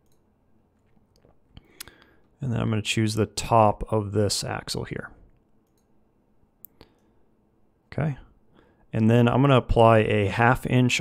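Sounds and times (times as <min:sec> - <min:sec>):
computer mouse clicks: 0:05.6 - 0:05.9.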